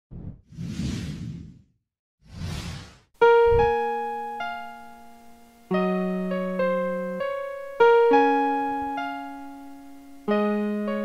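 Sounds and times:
whoosh sound effects: 2.2s - 3.7s.

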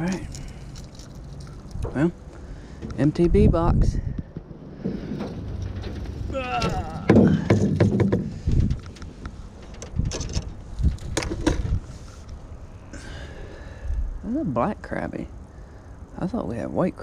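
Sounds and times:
wind rumble on microphone: 2.8s - 12.7s
knocks and clicks in metal boat: 4.8s - 9.0s.

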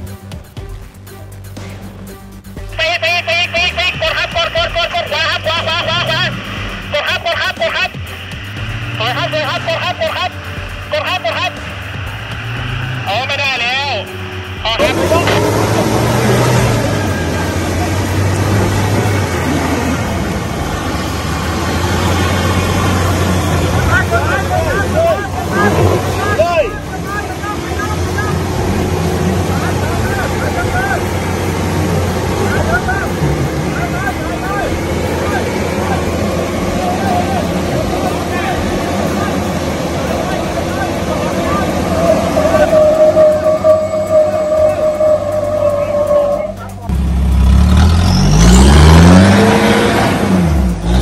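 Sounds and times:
onlookers talking: 2.7s - 51.0s
engine running under load: 2.8s - 51.0s.

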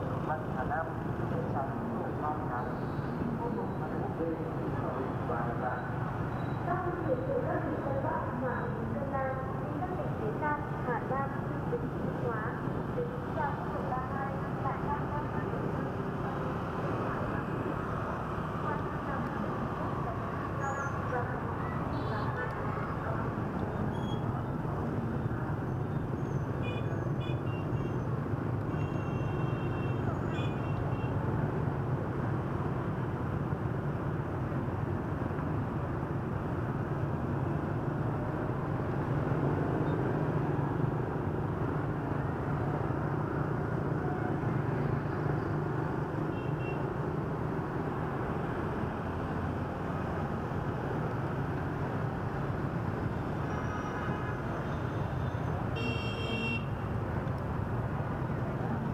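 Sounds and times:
engine and road rumble: 0.0s - 58.9s
wind: 0.0s - 58.9s.

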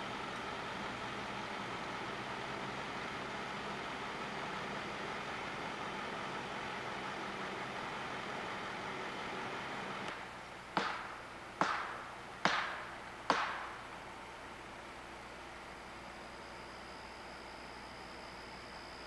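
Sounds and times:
low hum: 0.0s - 19.0s
vehicle road and engine noise: 0.0s - 19.0s.

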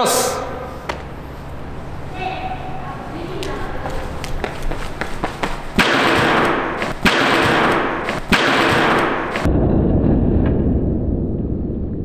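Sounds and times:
running footsteps on hall floor: 3.0s - 9.5s.

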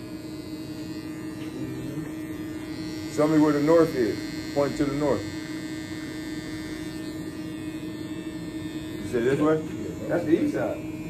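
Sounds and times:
electric hair clippers humming: 0.0s - 11.0s.

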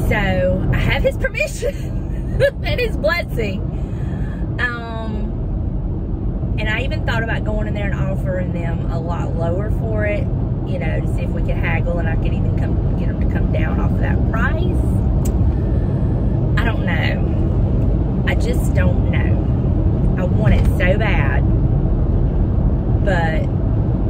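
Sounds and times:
woman talking: 0.0s - 3.6s, 4.5s - 5.3s, 6.6s - 15.0s, 16.6s - 17.4s, 18.3s - 19.5s, 20.2s - 21.4s, 23.0s - 23.5s
car road and engine rumble: 0.0s - 24.0s.

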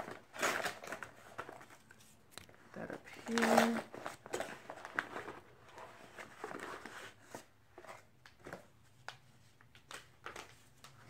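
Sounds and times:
packaging rustling and crinkling: 0.0s - 11.0s.

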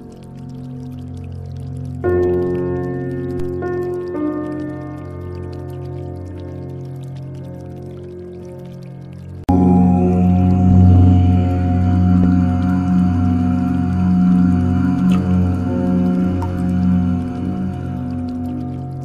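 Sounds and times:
deep voice chanting: 9.5s - 19.0s.

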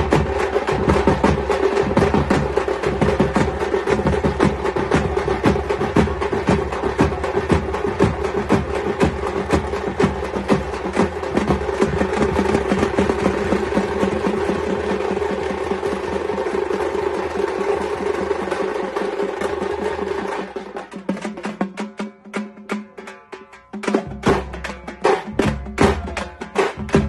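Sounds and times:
frame drums beaten rapidly: 0.0s - 27.0s.

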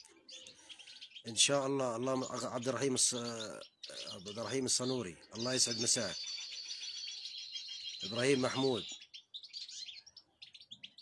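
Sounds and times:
finches twittering: 0.0s - 11.0s.

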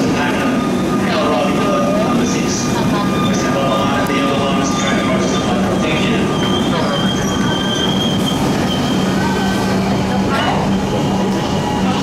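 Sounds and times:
train rolling rumble: 0.0s - 12.0s
wheels squealing on rails: 0.0s - 12.0s.

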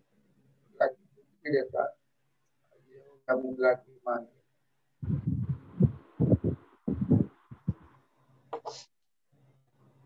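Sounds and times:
muffled low thumps: 5.0s - 7.9s.

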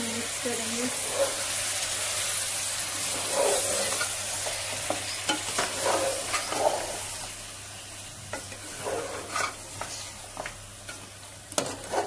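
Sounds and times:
food sizzling in metal pot: 0.0s - 12.0s.

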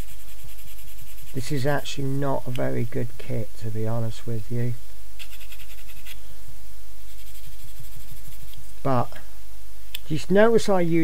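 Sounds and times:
sanding stick scratching plastic: 0.0s - 1.6s, 5.2s - 6.2s, 7.0s - 8.6s.

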